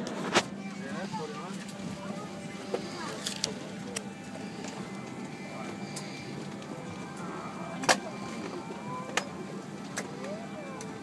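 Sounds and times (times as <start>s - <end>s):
airliner cabin hum: 0.0s - 11.0s.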